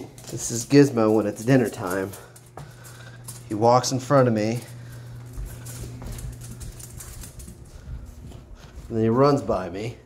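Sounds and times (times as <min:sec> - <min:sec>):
claws clicking on hard floor: 0:00.0 - 0:08.9
flip-flop footsteps: 0:00.0 - 0:09.6
faint low hum: 0:00.0 - 0:10.0.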